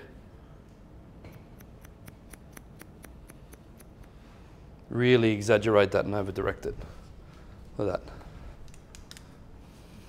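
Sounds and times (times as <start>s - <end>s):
scissors snipping hair: 1.3s - 4.1s.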